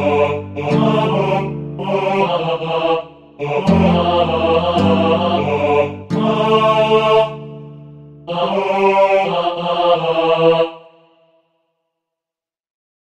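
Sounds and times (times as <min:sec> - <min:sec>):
synthesized choir chords: 0:00.0 - 0:11.5.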